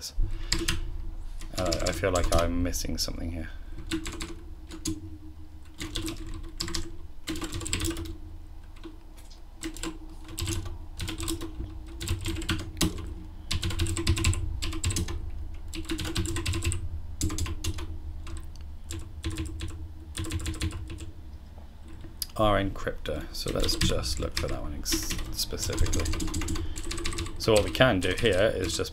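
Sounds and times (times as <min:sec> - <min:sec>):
keyboard typing: 0:00.5 - 0:02.4, 0:03.8 - 0:21.1, 0:23.4 - 0:28.9.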